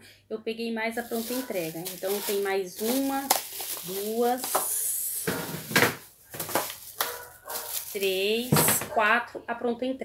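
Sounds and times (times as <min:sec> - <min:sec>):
plastic bottles and bag rustling: 0:01.0 - 0:09.1.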